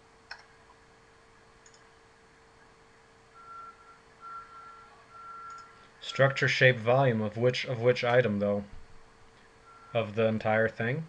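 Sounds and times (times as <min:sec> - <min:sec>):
low steady hum: 0:00.0 - 0:11.0
faint electronic beeps: 0:03.3 - 0:06.9, 0:09.6 - 0:10.4.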